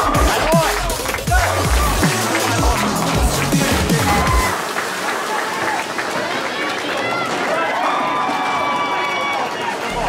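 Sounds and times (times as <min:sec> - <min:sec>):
people shouting and calling: 0:00.0 - 0:04.6
general hubbub: 0:00.0 - 0:10.0.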